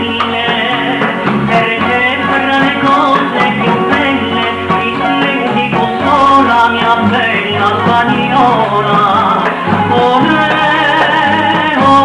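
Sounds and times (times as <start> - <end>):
guitar backing: 0.0 - 12.0
person singing: 0.0 - 12.0.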